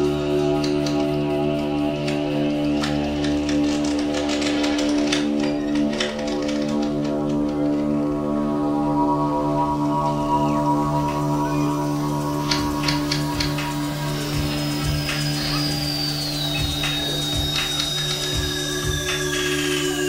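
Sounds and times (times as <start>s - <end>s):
layered electronic drone: 0.0s - 20.0s.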